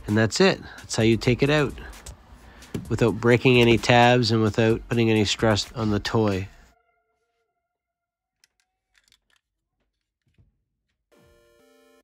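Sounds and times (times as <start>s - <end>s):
plastic toy parts clicking: 8.4s - 10.4s.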